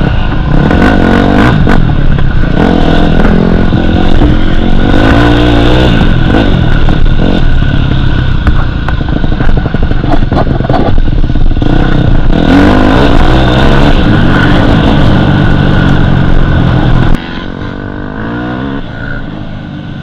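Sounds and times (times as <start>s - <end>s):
dirt bike engine revving: 0.0s - 20.0s.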